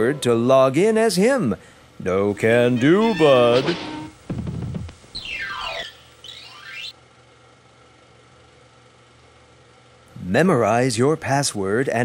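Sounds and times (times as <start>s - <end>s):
comic sliding whistle: 5.2s - 7.0s.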